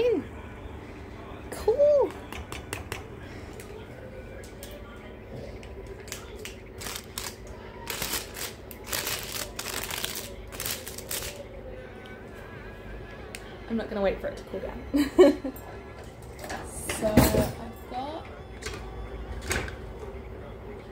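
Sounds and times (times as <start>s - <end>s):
rustling handling noise: 6.8s - 11.5s.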